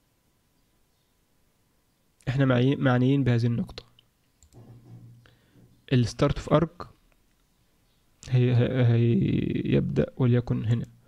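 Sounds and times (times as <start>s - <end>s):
computer mouse click: 3.8s - 4.7s.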